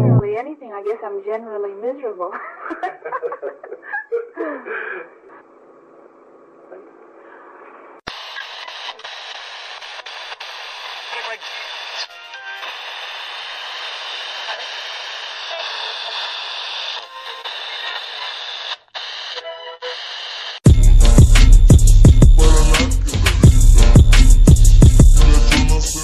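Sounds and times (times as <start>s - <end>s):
hissy radio-like voice sample: 0.0s - 0.2s, 5.0s - 20.5s
lo-fi beat: 0.0s - 0.3s, 20.6s - 26.0s
faint music track: 0.0s - 2.4s.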